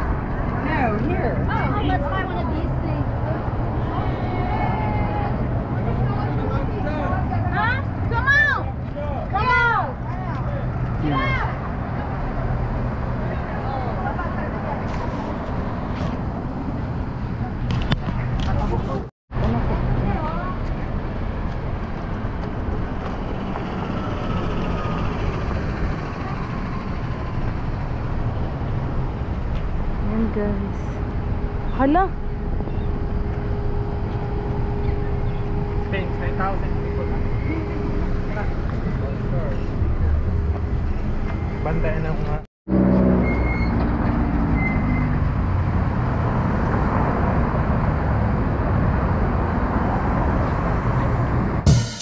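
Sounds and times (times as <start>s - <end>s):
traffic rumble: 0.0s - 51.7s
people talking: 30.0s - 31.0s, 35.9s - 37.7s.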